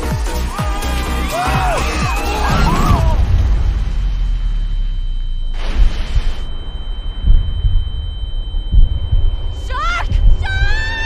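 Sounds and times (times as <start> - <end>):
rush of noise: 1.6 - 11.0
deep continuous rumble: 2.3 - 11.0
low booms: 2.3 - 11.0
high-pitched ringing tone: 3.9 - 11.0.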